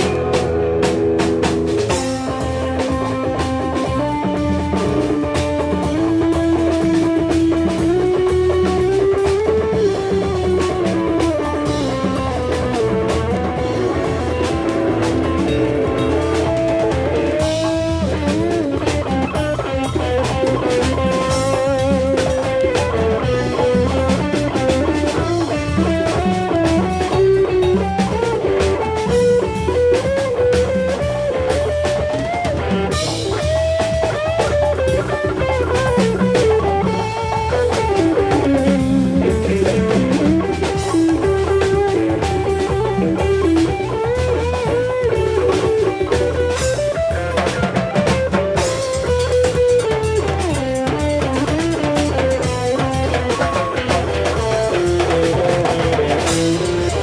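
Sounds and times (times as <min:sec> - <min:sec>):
drum kit beat: 0:00.0 - 0:57.0
electric guitar lead line: 0:00.0 - 0:57.0.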